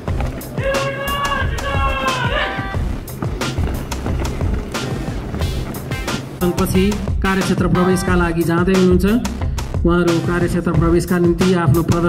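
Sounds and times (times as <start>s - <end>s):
march music: 0.0s - 12.0s.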